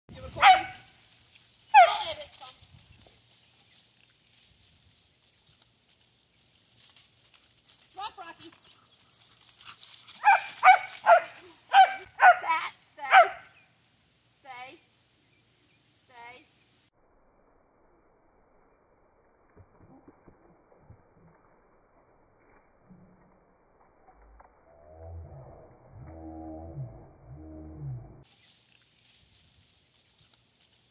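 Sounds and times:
dog barking: 0:00.4 - 0:00.9, 0:10.2 - 0:12.5, 0:13.1 - 0:13.5.

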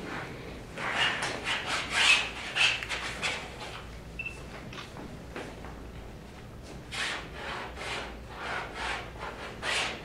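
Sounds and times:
palette knife scraping canvas: 0:00.8 - 0:03.4, 0:06.9 - 0:10.0.

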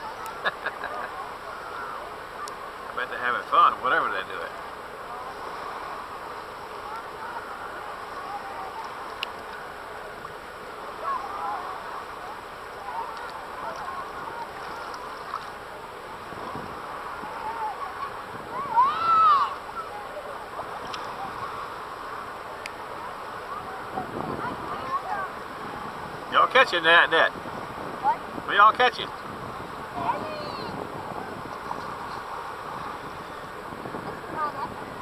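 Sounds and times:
swimmers and children chattering: 0:00.0 - 0:35.0
wind hiss: 0:00.0 - 0:35.0
loud high shout: 0:17.3 - 0:19.6.

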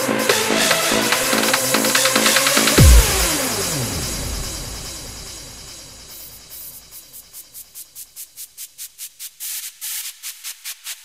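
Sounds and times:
hardstyle music: 0:00.0 - 0:06.5
deep bass hit: 0:02.8 - 0:06.0
descending sweep effect: 0:02.8 - 0:06.1.

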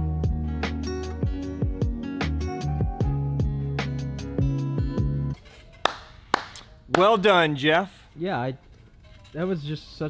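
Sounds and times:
sharp hand claps: 0:05.8 - 0:07.3.

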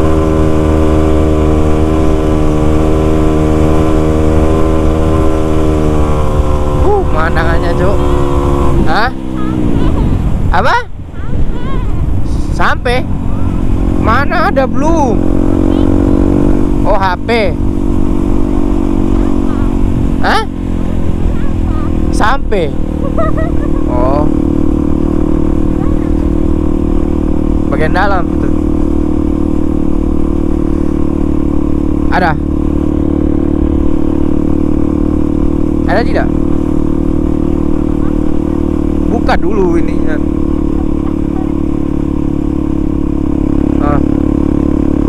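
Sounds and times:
motorcycle engine cruising: 0:00.0 - 0:45.0.

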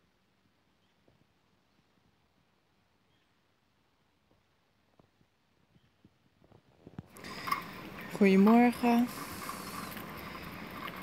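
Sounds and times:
faint bicycle clicks: 0:04.3 - 0:11.0.

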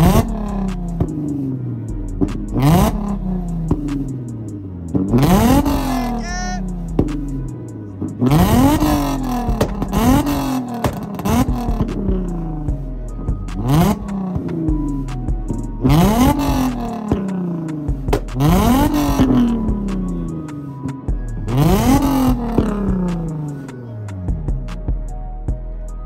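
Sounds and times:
car engine revving: 0:00.0 - 0:24.8
exhaust cracks and pops: 0:16.3 - 0:20.1.

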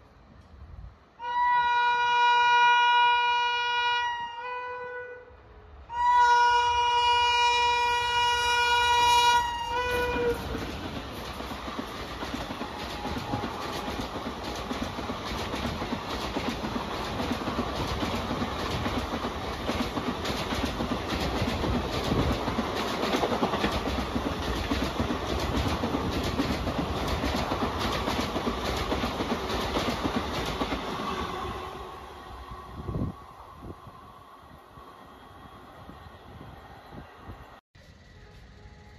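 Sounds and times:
passenger train passing: 0:00.0 - 0:38.9
locomotive horn blast: 0:01.2 - 0:10.5, 0:37.8 - 0:38.9
wheels clicking over rail joints: 0:10.0 - 0:31.0.

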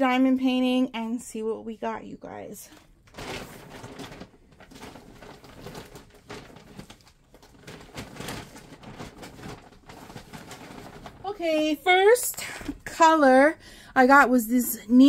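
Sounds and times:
yarn rustling and handling: 0:02.7 - 0:12.4.

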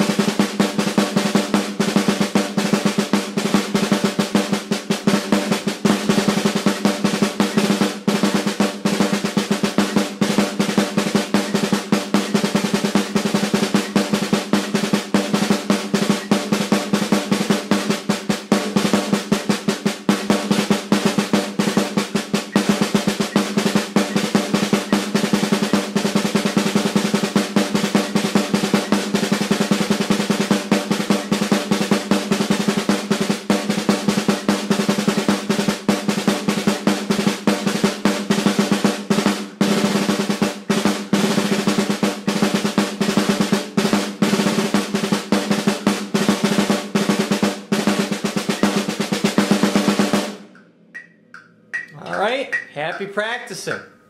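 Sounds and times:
snare drum rudimental solo: 0:00.0 - 0:50.5, 0:51.9 - 0:53.8.

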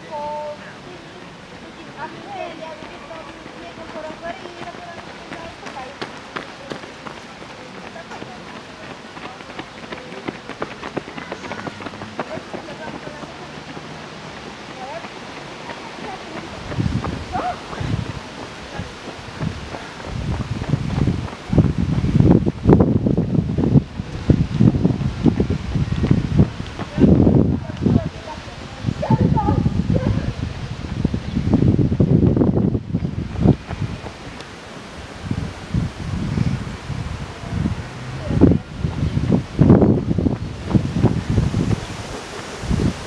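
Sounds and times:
faint voices: 0:00.0 - 0:21.8, 0:23.8 - 0:30.9, 0:36.5 - 0:43.0
footsteps on asphalt: 0:01.8 - 0:28.2, 0:32.2 - 0:35.5
wind buffeting microphone: 0:01.9 - 0:43.0.

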